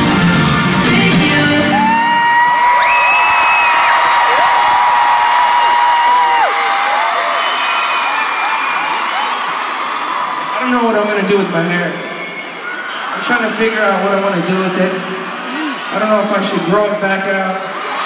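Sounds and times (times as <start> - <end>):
live pop band music: 0.0 - 2.8
crowd screaming and cheering: 0.0 - 18.0
long high-pitched screams: 1.7 - 10.5.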